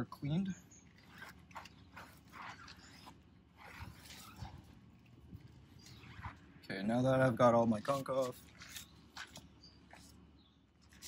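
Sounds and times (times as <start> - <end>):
towel rubbing rubber tire: 1.0 - 4.9.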